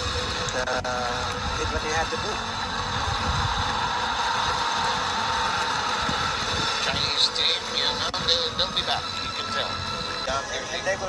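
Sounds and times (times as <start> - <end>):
arena crowd noise on television: 0.0 - 11.0.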